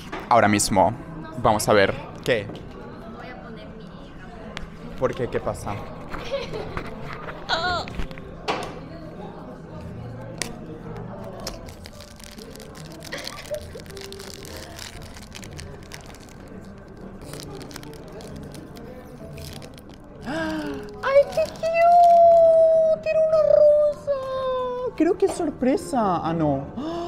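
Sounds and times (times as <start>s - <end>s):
cafe chatter: 0.0s - 27.0s
soft background music: 0.0s - 27.0s
foil wrapper crinkling: 11.2s - 22.8s.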